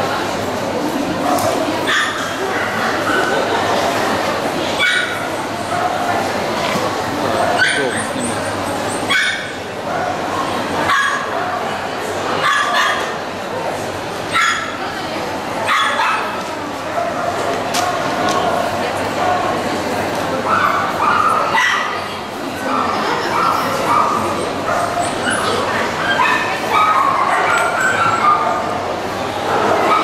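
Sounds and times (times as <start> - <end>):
crowd chatter: 0.0 - 30.0
small dog yapping: 7.5 - 8.1.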